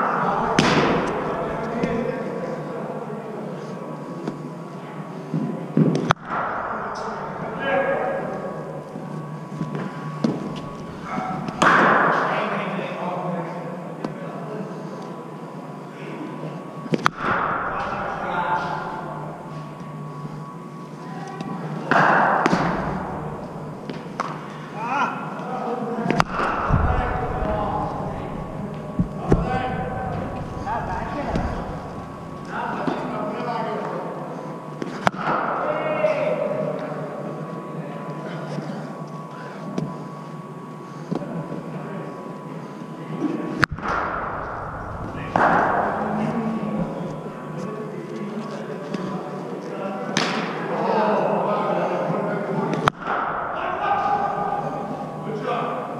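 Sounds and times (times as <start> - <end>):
hubbub of voices: 0.0 - 55.9.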